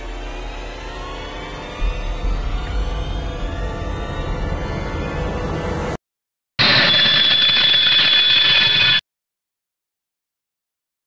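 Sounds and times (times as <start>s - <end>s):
shrill ringing alarm bell: 6.6s - 9.0s.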